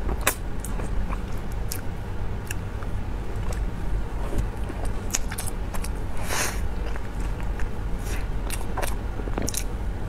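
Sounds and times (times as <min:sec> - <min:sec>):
chewing: 0:00.1 - 0:09.7
lip smacks and wet clicks: 0:00.2 - 0:03.7.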